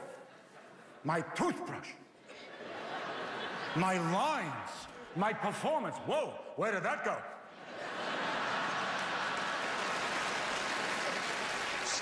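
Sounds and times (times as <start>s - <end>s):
audience laughing: 2.2s - 5.6s, 7.5s - 11.5s
audience applauding: 8.3s - 12.0s.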